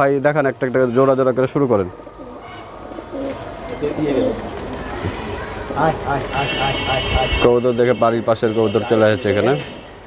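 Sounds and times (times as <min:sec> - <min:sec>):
pigeons cooing: 0:01.9 - 0:06.8
man speaking: 0:05.8 - 0:09.7.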